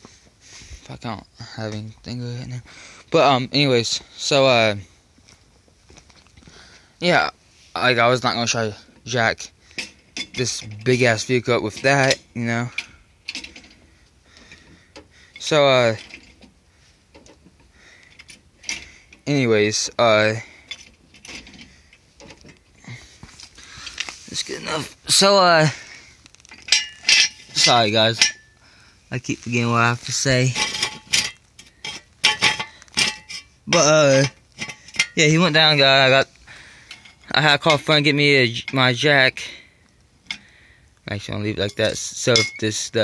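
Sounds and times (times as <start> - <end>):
metal clicks and knocks: 30.4 - 35.2.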